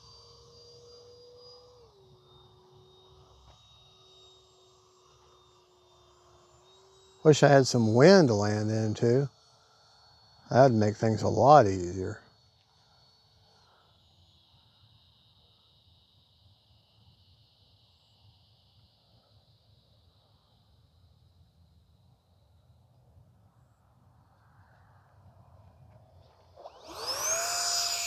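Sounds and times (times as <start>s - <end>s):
electric fan whine: 0.0s - 28.0s.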